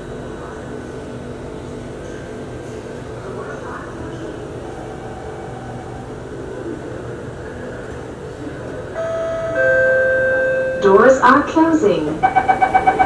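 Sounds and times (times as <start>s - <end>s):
train interior hum: 0.0s - 13.0s
door-closing warning chime: 12.2s - 13.0s.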